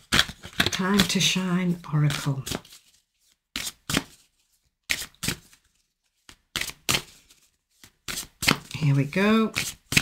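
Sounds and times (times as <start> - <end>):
cards being shuffled by hand: 0.0 - 10.0.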